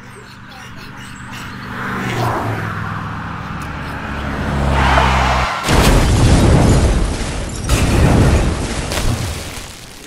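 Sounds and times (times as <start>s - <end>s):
car engine approaching: 0.0s - 5.8s
loud car crash: 4.8s - 9.7s.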